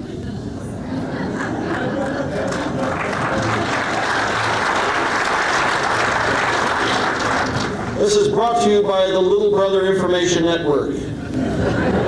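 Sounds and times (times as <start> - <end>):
audience applauding: 1.4 - 8.2.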